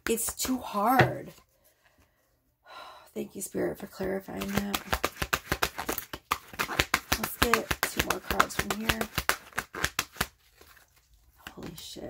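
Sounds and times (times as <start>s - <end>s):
cards shuffling: 4.3s - 11.8s.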